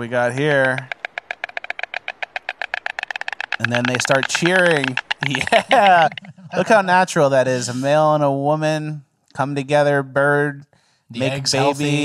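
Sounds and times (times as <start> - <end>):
storks clattering bills: 0.0 - 6.9.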